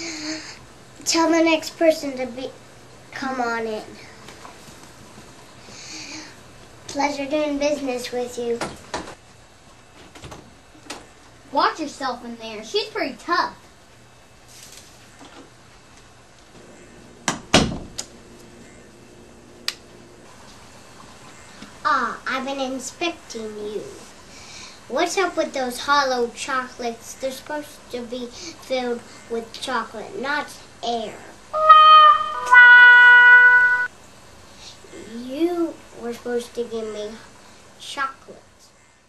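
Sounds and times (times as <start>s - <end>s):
sustained electronic tones: 31.6s - 33.9s.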